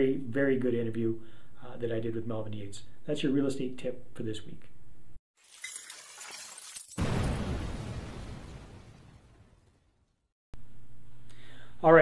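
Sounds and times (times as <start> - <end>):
glass-like shattering: 5.4 - 10.0
deep boom: 7.0 - 9.8.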